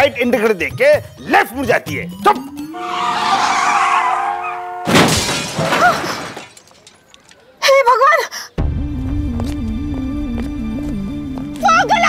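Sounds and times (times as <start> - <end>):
car horn blaring: 2.8 - 5.0
car tyres skidding: 2.8 - 6.4
car crash: 2.8 - 7.4
glass shattering: 4.8 - 7.4.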